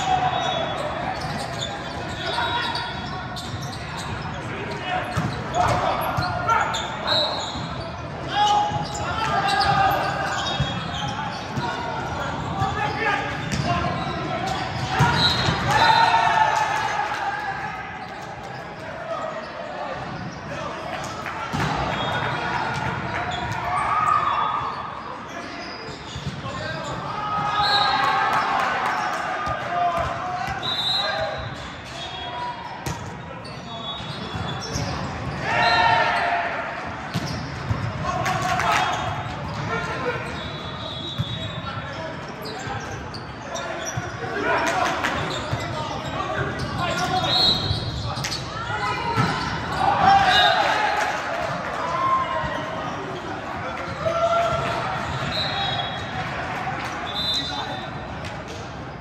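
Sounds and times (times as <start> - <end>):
players shouting: 0.0 - 25.7, 34.5 - 41.9, 43.5 - 58.0
sneaker squeaks on court: 0.5 - 15.8, 24.6 - 28.0, 30.0 - 35.4, 37.0 - 38.0, 38.8 - 50.5.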